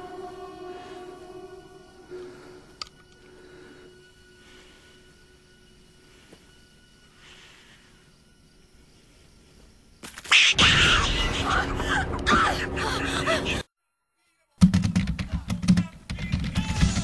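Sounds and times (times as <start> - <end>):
faint musical drone: 0.0 - 10.0
soft hissing swells: 0.0 - 10.0.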